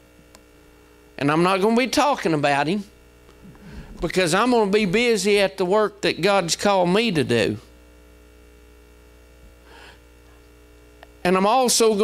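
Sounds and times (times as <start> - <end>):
electrical mains hum: 0.0 - 12.0
faint puff of noise: 3.4 - 4.0.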